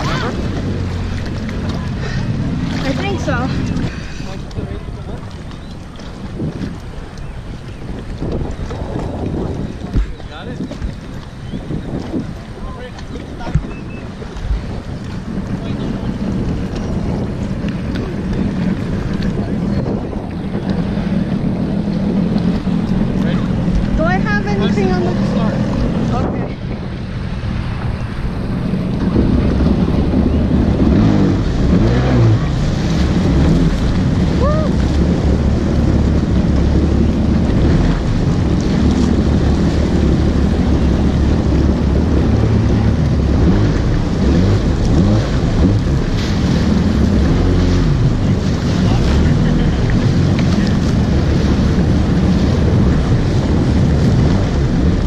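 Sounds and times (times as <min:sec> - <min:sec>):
jet ski engine hum: 0:00.0 - 0:55.0
wind buffeting microphone: 0:00.0 - 0:55.0.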